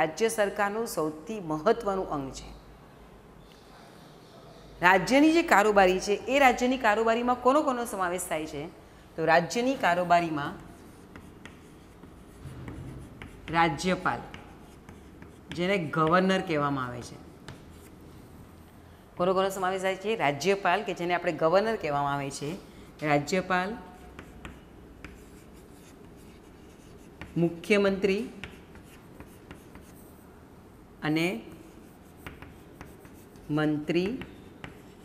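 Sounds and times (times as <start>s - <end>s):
chalk scratching on blackboard: 10.2s - 16.2s, 17.1s - 18.3s, 23.8s - 30.3s, 31.4s - 35.0s
chalk tap: 10.5s - 16.4s, 17.4s - 18.0s, 23.9s - 27.5s, 28.2s - 30.1s, 31.5s - 35.0s.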